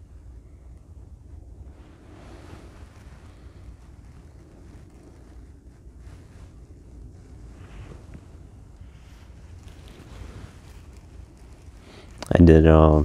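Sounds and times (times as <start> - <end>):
low rumble with faint hiss: 0.0 - 13.0.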